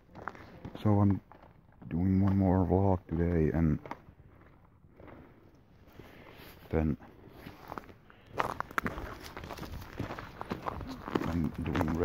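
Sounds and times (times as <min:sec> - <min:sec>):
footsteps walking: 0:00.0 - 0:06.7, 0:07.3 - 0:12.0.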